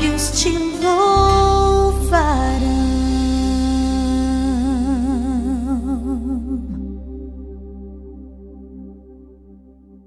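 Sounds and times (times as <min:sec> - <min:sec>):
woman singing a long low note: 0:00.0 - 0:08.2
sustained low chord: 0:00.0 - 0:10.0.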